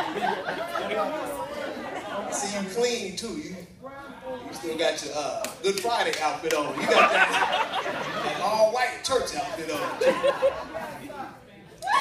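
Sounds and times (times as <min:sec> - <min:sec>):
voices chattering: 0:00.0 - 0:06.1.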